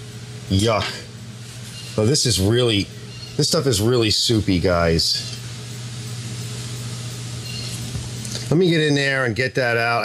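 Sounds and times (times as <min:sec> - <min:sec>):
machine humming with hiss: 0:00.0 - 0:10.0.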